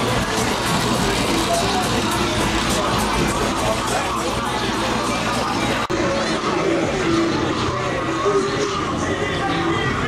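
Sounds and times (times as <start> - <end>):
crowd voices: 0.0 - 10.0
music: 0.0 - 10.0.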